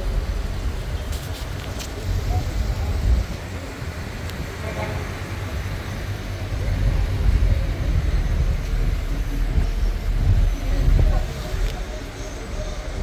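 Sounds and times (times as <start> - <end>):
vehicle driving slowly: 0.0 - 13.0.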